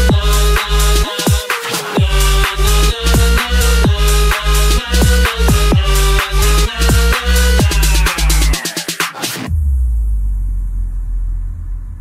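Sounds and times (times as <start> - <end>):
deep sub-bass drone: 0.0 - 1.1, 2.0 - 8.6, 9.5 - 12.0
electronic bass beat: 0.0 - 12.0.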